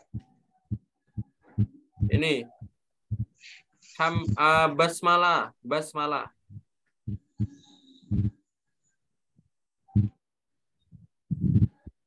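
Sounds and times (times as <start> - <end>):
dull low thumps: 0.0 - 3.4, 4.2 - 4.6, 6.5 - 8.4, 11.3 - 12.0.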